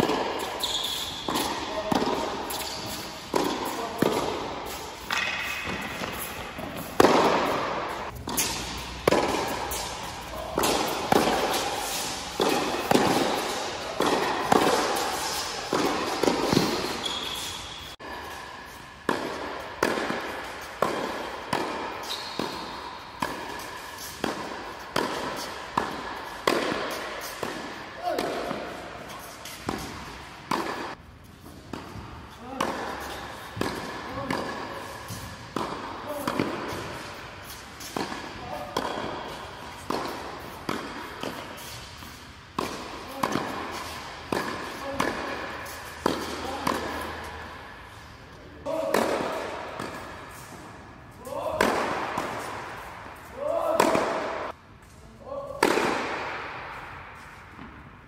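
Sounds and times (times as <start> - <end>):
tennis balls bouncing: 0.0 - 58.0
tennis balls hit by rackets: 0.0 - 58.0.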